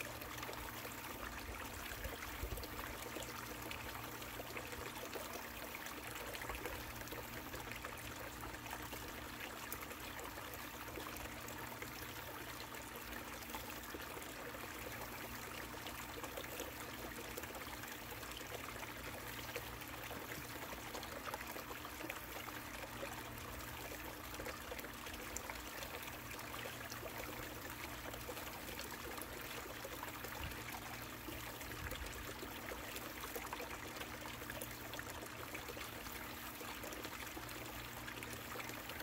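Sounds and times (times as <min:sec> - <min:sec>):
faint steady hum: 0:00.0 - 0:39.0
water trickling down a sluice: 0:00.0 - 0:39.0.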